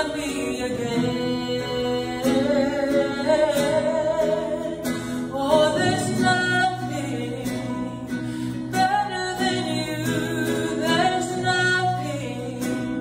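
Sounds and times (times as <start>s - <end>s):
acoustic guitar: 0.0s - 13.0s
woman singing into microphone: 0.0s - 13.0s.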